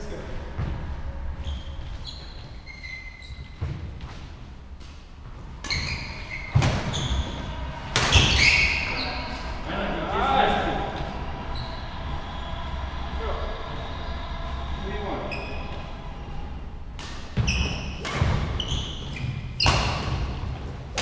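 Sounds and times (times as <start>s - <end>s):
court shoes squeaking: 0.6s - 9.5s, 11.0s - 11.8s, 15.3s - 15.9s, 17.0s - 21.0s.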